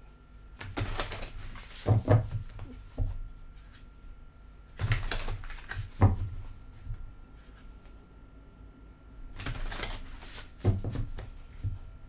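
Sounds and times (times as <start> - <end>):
cards being shuffled: 0.6 - 2.8, 4.8 - 8.0, 9.3 - 11.8.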